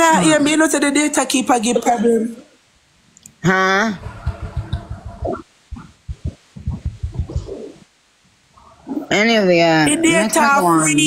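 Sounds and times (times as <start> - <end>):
low thumps: 4.0 - 7.9
garbled voice breaking up: 6.6 - 7.9.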